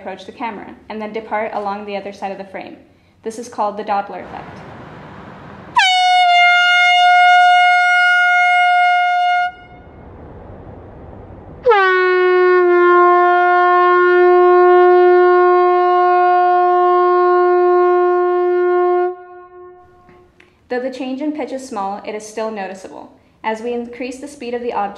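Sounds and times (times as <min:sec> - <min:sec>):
air horn blasts: 0:05.7 - 0:10.0, 0:11.6 - 0:20.3.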